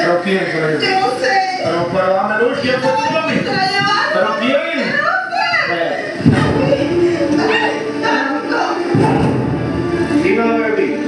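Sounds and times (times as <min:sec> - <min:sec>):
heavy low music beat: 0:06.0 - 0:11.0.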